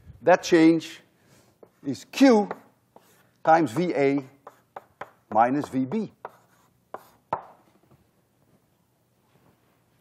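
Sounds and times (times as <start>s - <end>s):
chalk tapping and scraping on blackboard: 1.6s - 7.6s.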